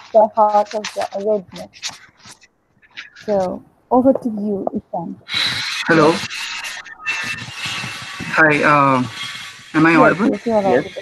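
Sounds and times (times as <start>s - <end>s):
scratchy rubbing on microphone: 0.0s - 3.5s, 5.2s - 11.0s.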